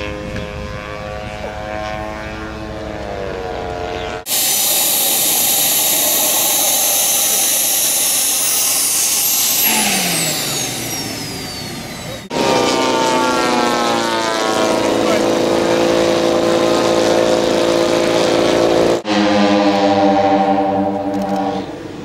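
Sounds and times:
model plane piston engine droning: 0.0 - 22.0
model jet turbine whine and hiss: 4.3 - 12.6.

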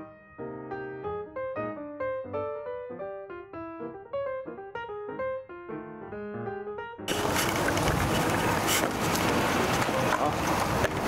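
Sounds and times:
wind buffeting microphone: 7.1 - 11.0.

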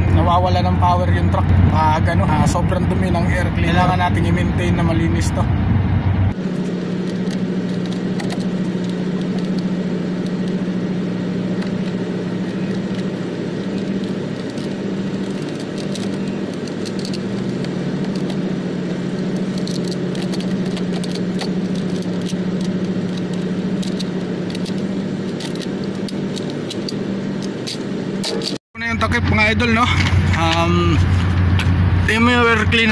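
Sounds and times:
engine humming: 0.0 - 32.9.

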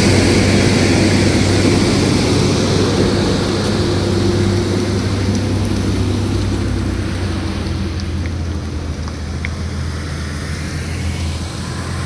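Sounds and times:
road and tyre noise: 0.0 - 12.0
truck diesel engine droning: 0.0 - 12.0.

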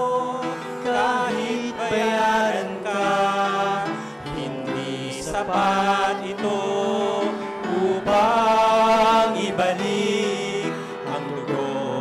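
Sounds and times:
man singing into a microphone: 0.0 - 12.0.

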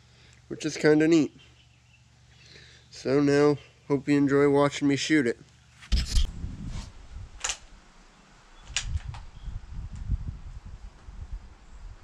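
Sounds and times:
sharp clicks: 7.4 - 7.7, 8.6 - 9.3.

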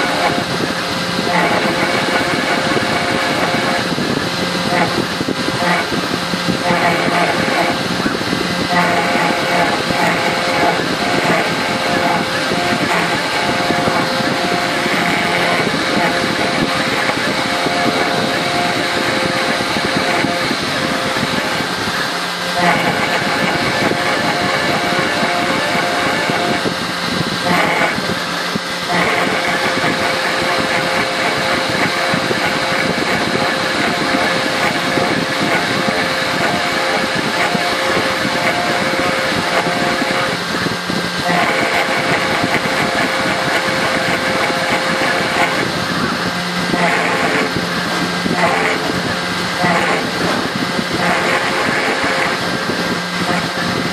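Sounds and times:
bit cutting metal: 0.0 - 53.9
router spindle whine: 0.0 - 53.9.

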